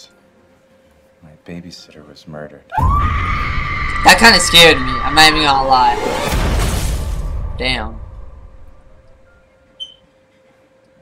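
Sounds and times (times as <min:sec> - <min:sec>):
faint steady hum: 0:00.0 - 0:05.9, 0:06.9 - 0:11.0.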